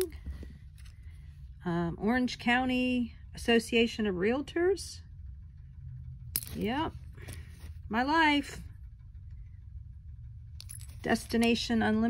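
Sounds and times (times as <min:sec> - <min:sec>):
faint low rumble: 0:00.0 - 0:12.0.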